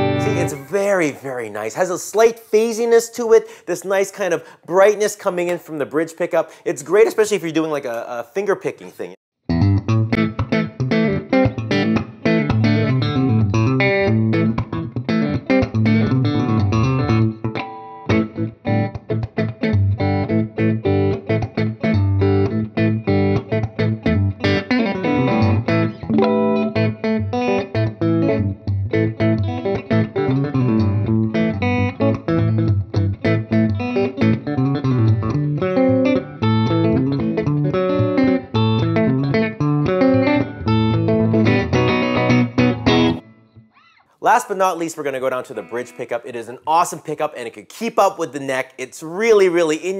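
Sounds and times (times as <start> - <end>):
electric guitar notes and chords: 0.0 - 1.8, 9.4 - 44.2.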